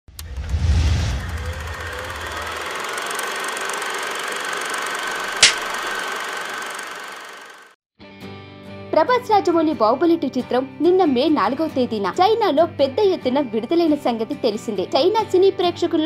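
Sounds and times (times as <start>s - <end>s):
deep rumbling boom: 0.2s - 2.3s
noisy whoosh: 0.2s - 3.1s
sharp click: 5.4s - 5.8s.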